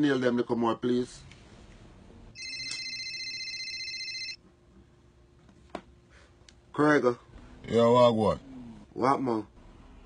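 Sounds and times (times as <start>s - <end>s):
telephone ringing: 2.4s - 4.4s.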